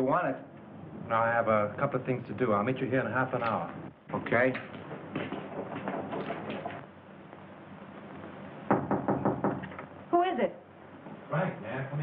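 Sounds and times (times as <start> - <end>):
knocking on a door: 8.7 - 9.8.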